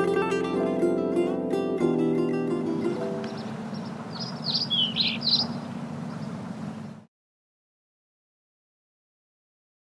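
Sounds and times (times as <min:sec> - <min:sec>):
low steady hum: 0:02.6 - 0:07.1
bird chirping: 0:02.8 - 0:07.1.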